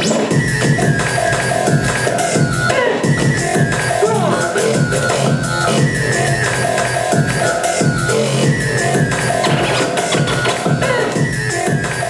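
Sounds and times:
electronic hip-hop beat: 0.0s - 12.0s.

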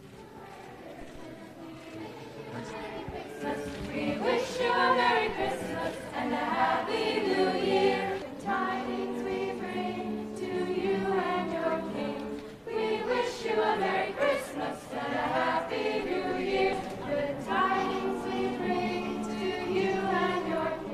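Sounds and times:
choir singing held notes: 0.0s - 20.9s.

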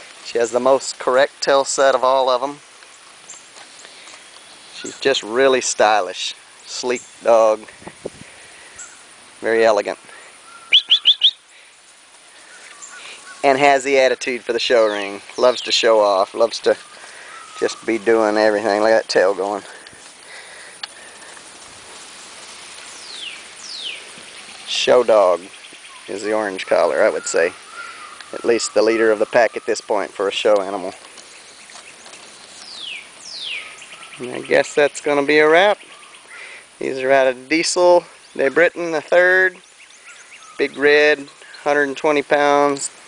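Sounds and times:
bird chirping: 0.0s - 43.0s
faint outdoor background: 0.0s - 43.0s
faint steady hiss: 0.0s - 43.0s
bird whistled call sliding down: 10.5s - 11.4s.

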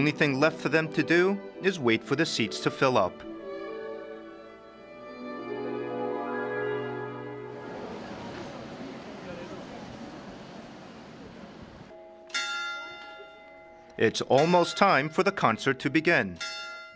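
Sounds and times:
held musical chord: 0.0s - 9.7s
church bell ringing: 4.4s - 8.9s, 11.9s - 16.9s
steady noisy wash: 7.4s - 11.9s.

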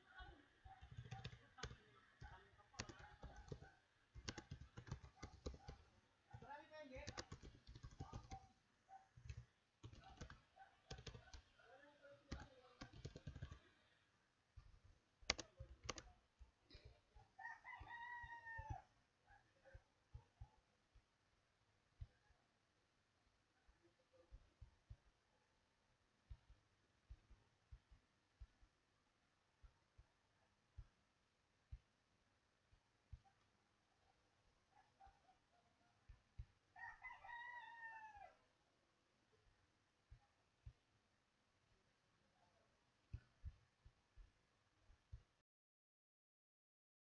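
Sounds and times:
faint rooster crowing: 16.9s - 20.6s, 34.7s - 38.8s.

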